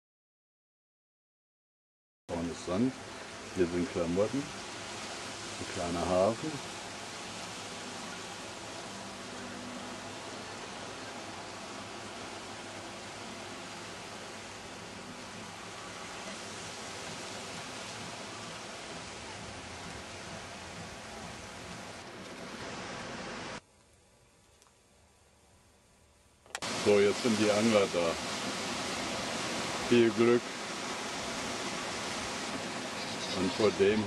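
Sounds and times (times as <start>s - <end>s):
sea surf: 2.3s - 23.6s, 26.6s - 34.0s
wind: 2.3s - 34.0s.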